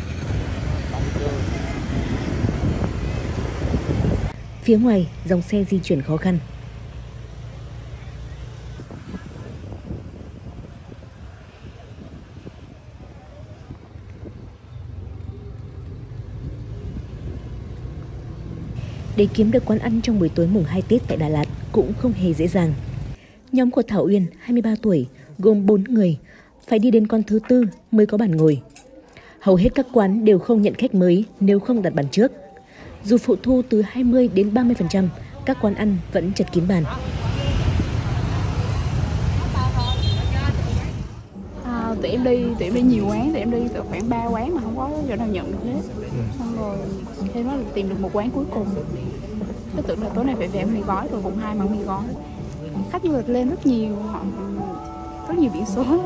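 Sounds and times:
city street traffic rumble: 0.0 - 56.0
crowd talking: 24.2 - 56.0.

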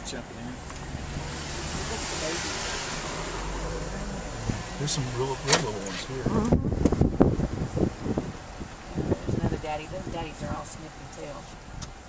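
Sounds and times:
low engine rumble: 0.0 - 12.0
traffic rushing: 0.0 - 12.0.

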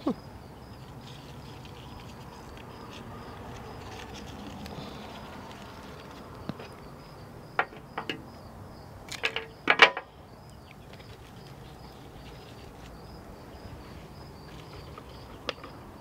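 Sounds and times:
insects buzzing: 0.0 - 16.0.

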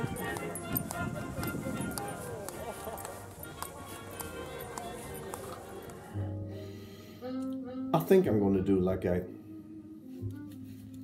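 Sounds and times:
people talking: 0.0 - 6.2
background music: 0.0 - 11.0.

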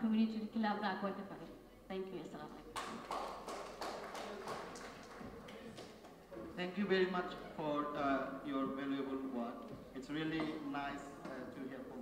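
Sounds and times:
audience applauding: 2.8 - 6.2.

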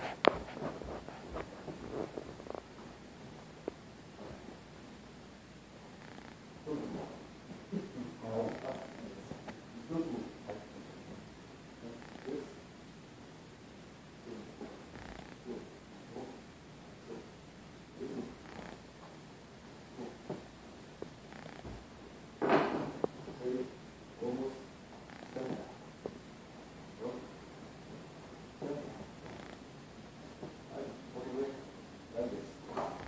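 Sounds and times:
muffled low voice murmuring: 15.4 - 17.3, 19.9 - 20.4, 25.3 - 25.8.

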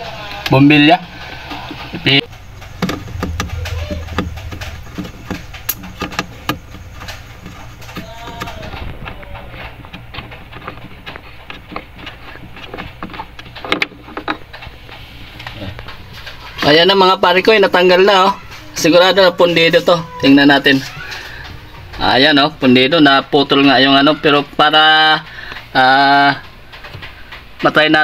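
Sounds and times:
low hum: 2.3 - 8.1.

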